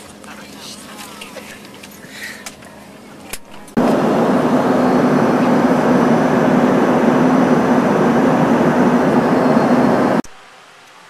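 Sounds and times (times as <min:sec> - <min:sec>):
low steady hum: 0:02.7 - 0:10.2
engine and airflow rush: 0:03.7 - 0:10.2.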